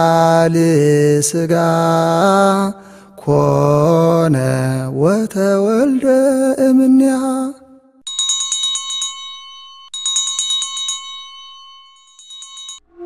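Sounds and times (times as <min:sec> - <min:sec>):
man chanting: 0:00.0 - 0:07.6
rapid bright bell chimes: 0:08.1 - 0:12.9.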